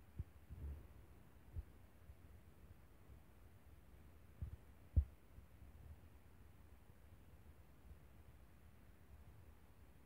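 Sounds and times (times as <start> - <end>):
faint low rumble: 0.0 - 10.0.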